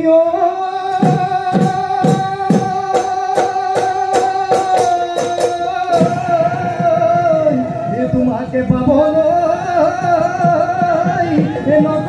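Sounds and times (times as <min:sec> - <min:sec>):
drum strokes and roll: 0:00.9 - 0:12.0.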